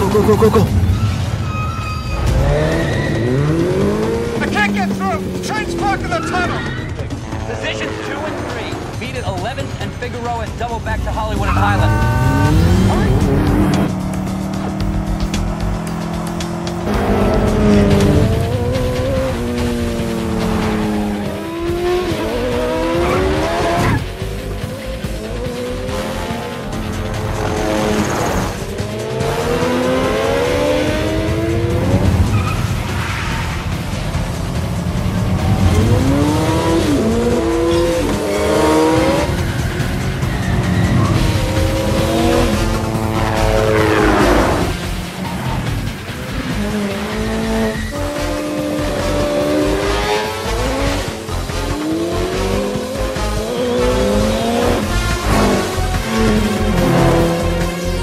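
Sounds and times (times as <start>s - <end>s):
tyres squealing: 0.0s - 8.5s, 35.6s - 58.0s
car engines revving hard: 0.0s - 58.0s
film music score: 0.0s - 58.0s.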